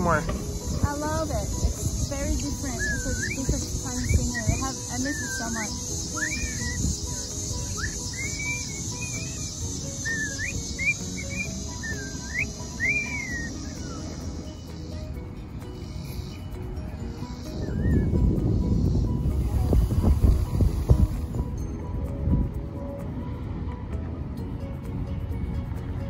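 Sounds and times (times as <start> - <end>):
high insect drone: 0.0 - 23.6
cockatiel whistling: 0.4 - 15.0, 17.2 - 19.0.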